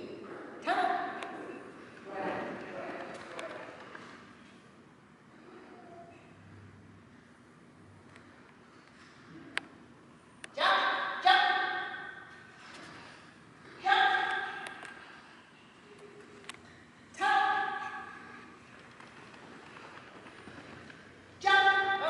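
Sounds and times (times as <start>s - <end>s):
woman shouting to a dog: 0.6s - 1.2s, 10.6s - 12.1s, 13.8s - 14.6s, 17.2s - 18.0s, 21.4s - 22.0s.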